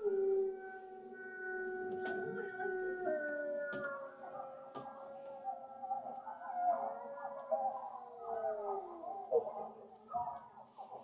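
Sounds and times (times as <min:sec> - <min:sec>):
wolves howling: 0:00.0 - 0:10.6.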